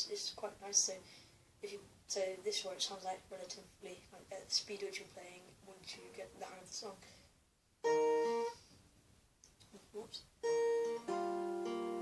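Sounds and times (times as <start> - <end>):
acoustic guitar fingerpicked: 7.8 - 8.6, 10.0 - 12.0.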